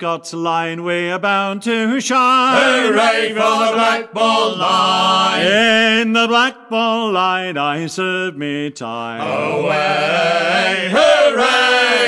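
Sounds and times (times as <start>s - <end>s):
men singing a sea shanty: 0.9s - 12.0s.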